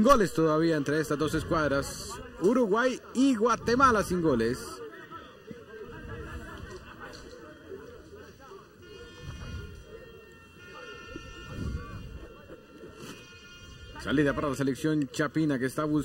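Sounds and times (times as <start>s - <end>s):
distant crowd voices and calls: 0.0s - 16.0s.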